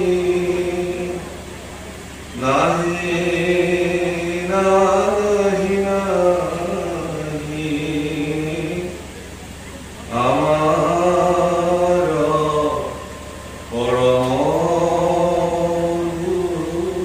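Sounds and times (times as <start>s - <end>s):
man chanting melodically: 0.0s - 17.0s.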